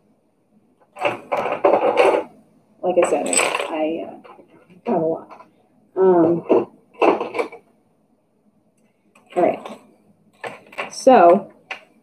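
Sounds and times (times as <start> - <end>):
small metal pins clinking: 3.0 - 5.5.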